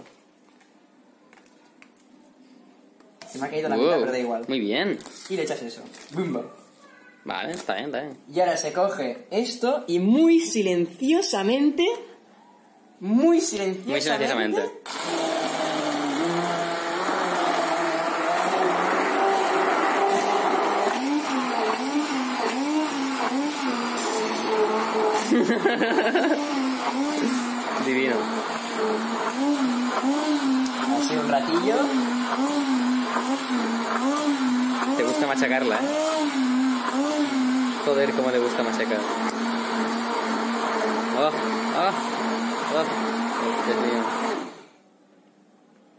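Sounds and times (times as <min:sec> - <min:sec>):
immersion blender motor hum: 0:14.9 - 0:44.7.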